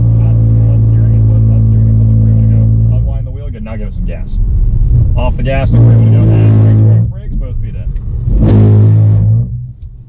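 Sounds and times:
car engine drone from inside cabin: 0.0s - 10.0s.

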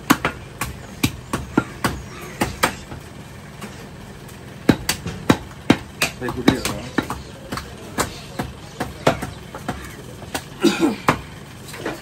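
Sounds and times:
cleaver chopping meat on wood: 0.0s - 2.9s, 4.6s - 11.3s.

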